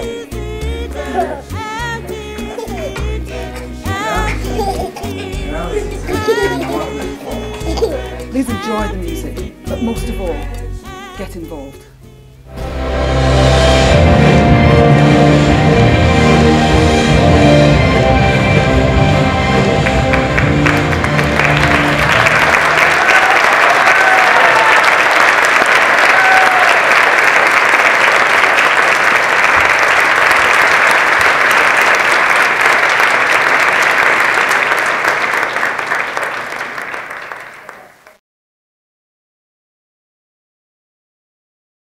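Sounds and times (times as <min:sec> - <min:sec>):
audience applauding: 0:00.0 - 0:08.7, 0:17.7 - 0:38.2
music: 0:00.0 - 0:23.1.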